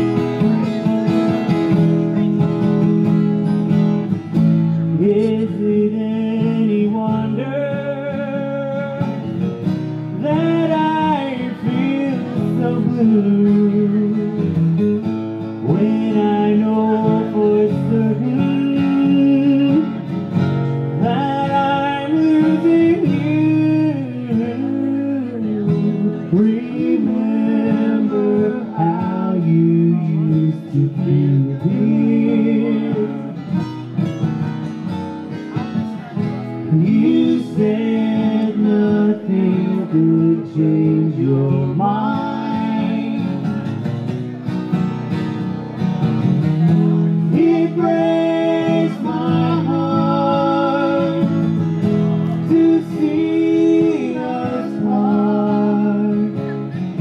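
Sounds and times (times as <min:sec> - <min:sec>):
lap guitar sliding lead: 0:00.0 - 0:57.0
rhythm acoustic guitar: 0:00.0 - 0:57.0.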